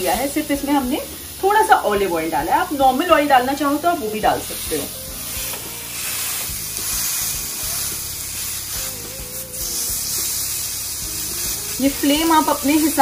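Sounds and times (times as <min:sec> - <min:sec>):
meat sizzling on grill pan: 0:00.0 - 0:13.0.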